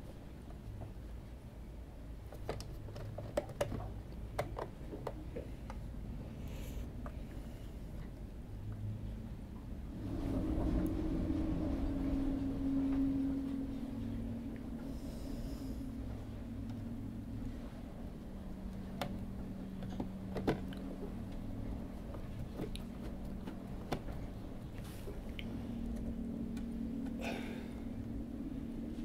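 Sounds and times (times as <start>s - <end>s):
low steady hum: 0.0s - 29.0s.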